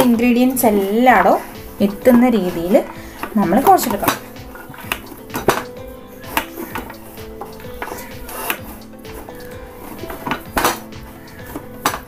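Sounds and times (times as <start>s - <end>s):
background music with held tones: 0.0s - 12.0s
hand kneading dough on metal: 0.0s - 12.0s.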